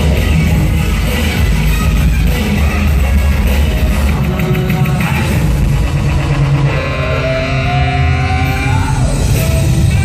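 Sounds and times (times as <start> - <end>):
dance remix music with heavy bass: 0.0 - 10.0.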